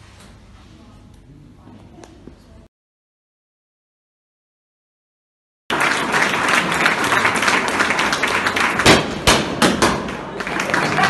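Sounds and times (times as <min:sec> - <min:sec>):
audience applauding and cheering: 0:05.7 - 0:11.0.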